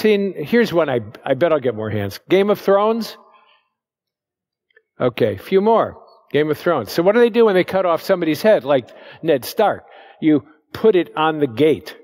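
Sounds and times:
man speaking: 0:00.0 - 0:03.2, 0:05.0 - 0:12.0.

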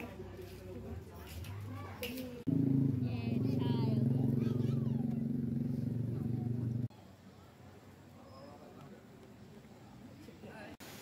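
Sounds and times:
people's voices: 0:00.0 - 0:10.8.

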